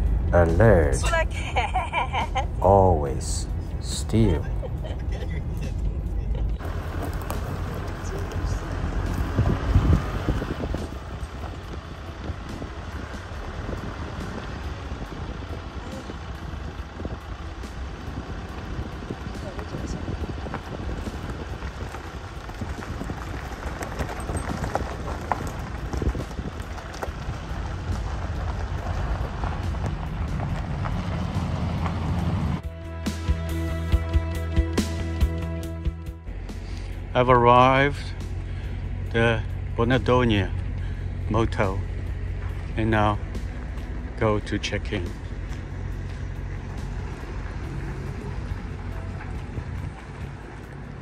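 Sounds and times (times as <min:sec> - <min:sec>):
wind rumbling on microphone: 0:04.4 - 0:32.6, 0:45.2 - 0:51.0.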